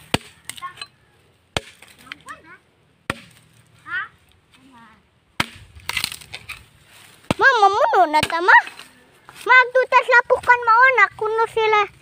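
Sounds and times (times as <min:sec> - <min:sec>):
blade chopping wooden log: 0:01.6 - 0:02.0, 0:03.1 - 0:03.4, 0:05.4 - 0:06.5.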